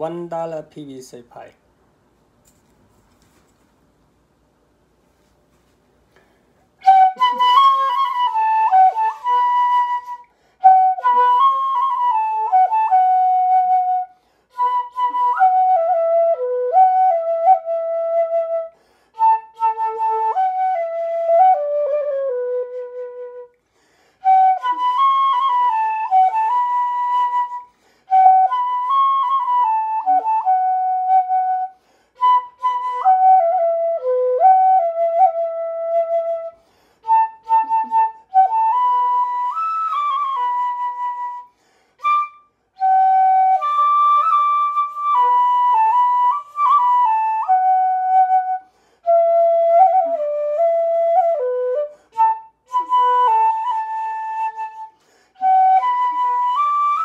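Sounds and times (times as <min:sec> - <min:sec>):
flute playing slow melody: 0:06.8 - 0:23.6, 0:24.2 - 0:57.0.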